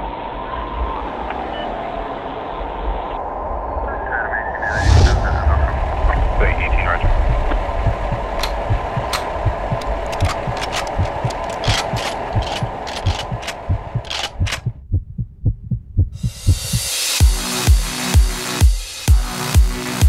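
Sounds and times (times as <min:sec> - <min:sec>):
deep thumps: 0:07.0 - 0:16.9.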